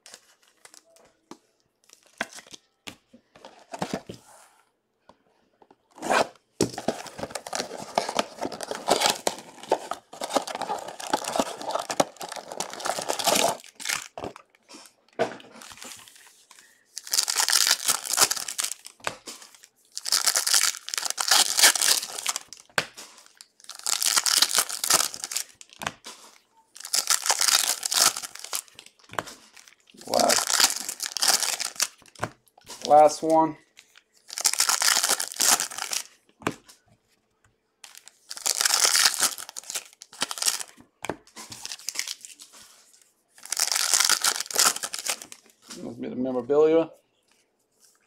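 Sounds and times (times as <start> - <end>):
card pack wrappers tearing: 6.0 - 14.4, 17.0 - 25.7, 26.8 - 28.8, 29.6 - 32.1, 34.3 - 36.1, 37.9 - 40.7, 43.4 - 45.4.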